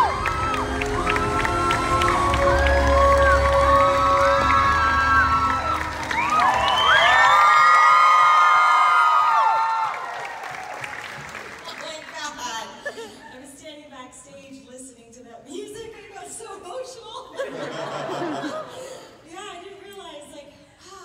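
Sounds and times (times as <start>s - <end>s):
music over sound system: 0.0s - 6.8s
audience cheering and screaming: 0.0s - 11.4s.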